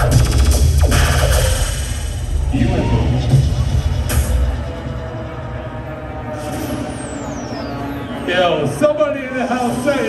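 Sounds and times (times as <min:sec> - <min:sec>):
electronic bass music: 0:00.0 - 0:08.3
falling synth sweep: 0:00.0 - 0:10.0.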